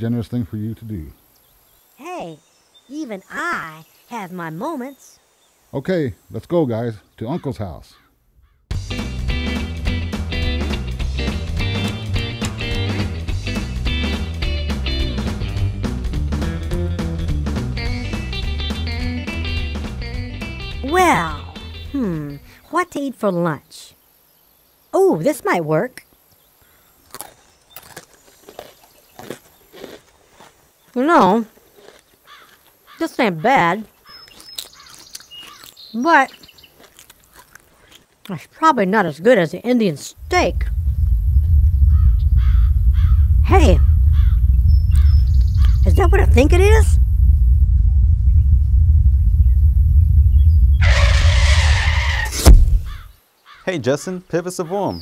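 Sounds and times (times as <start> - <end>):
munching and chewing sticks: 26.6 - 33.0, 33.8 - 38.5
deep rumble: 40.2 - 53.1
skidding hiss: 50.7 - 53.1
sharp thump: 50.8 - 53.1.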